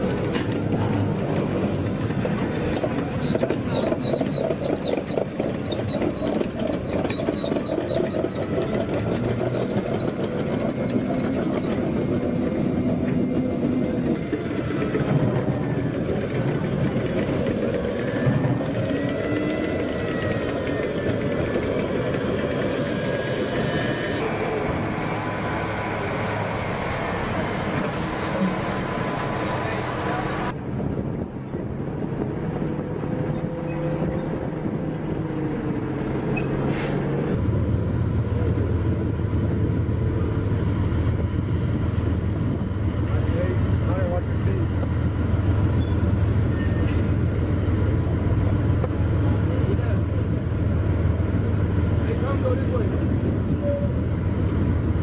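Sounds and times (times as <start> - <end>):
heavy vehicle engines running: 0.0 - 55.0.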